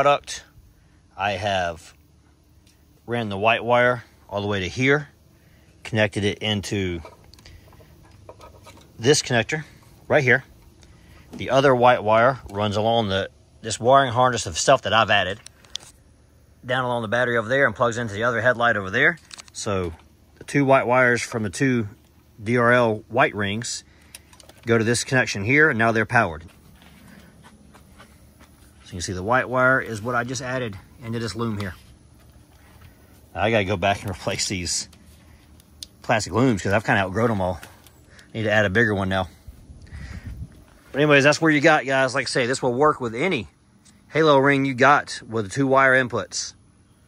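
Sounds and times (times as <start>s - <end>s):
low background hiss: 0.0s - 47.0s
hand handling wiring and connectors: 6.5s - 11.7s, 15.2s - 16.0s, 18.8s - 20.5s, 23.6s - 25.6s, 26.3s - 38.4s.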